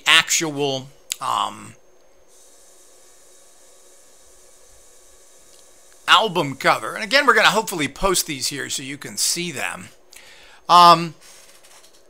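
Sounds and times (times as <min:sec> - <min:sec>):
low steady background hiss: 0:00.0 - 0:11.5.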